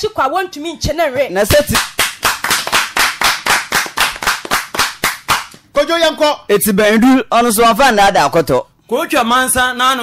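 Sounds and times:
hand clapping: 0:01.5 - 0:05.7.

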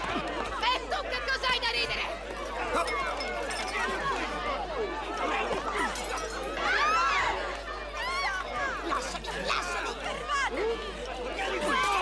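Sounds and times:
people shouting and yelling: 0:00.0 - 0:12.0.

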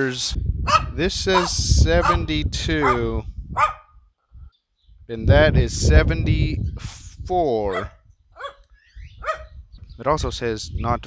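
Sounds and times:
small dog barking: 0:00.7 - 0:03.0, 0:03.6 - 0:03.9, 0:07.7 - 0:08.6, 0:09.2 - 0:09.5.

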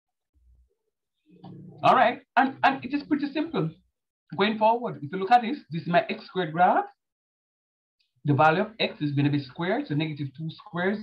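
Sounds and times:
man speaking: 0:01.8 - 0:07.0, 0:08.3 - 0:11.0.

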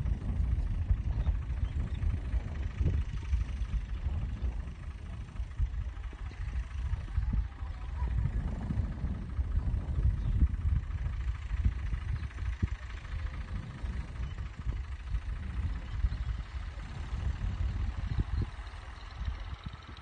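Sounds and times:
distant tractor engine rumbling: 0:00.0 - 0:20.0.

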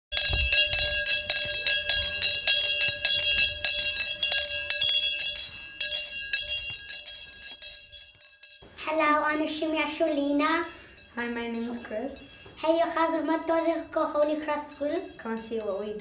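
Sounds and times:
handbell ringing rapidly: 0:00.1 - 0:08.6, 0:09.8 - 0:16.0.

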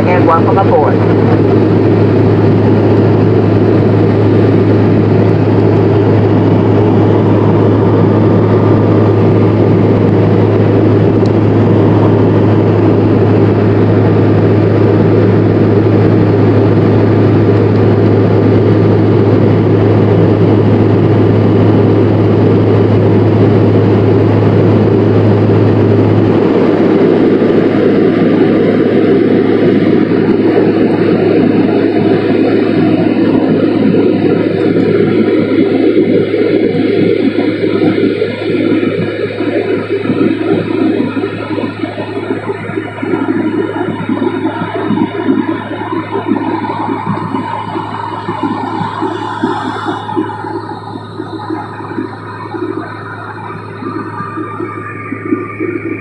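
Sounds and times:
jet engine and airflow rush: 0:00.0 - 0:56.0
low drone: 0:00.0 - 0:56.0.

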